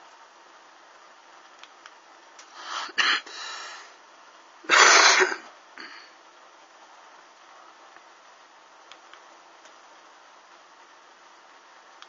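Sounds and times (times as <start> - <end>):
person coughing: 3.0 - 3.3, 4.7 - 6.1.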